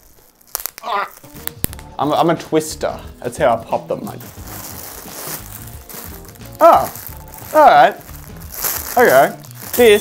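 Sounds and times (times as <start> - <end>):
plastic packaging rustling: 0.0 - 1.8, 3.4 - 10.0
quiet background music: 0.0 - 10.0.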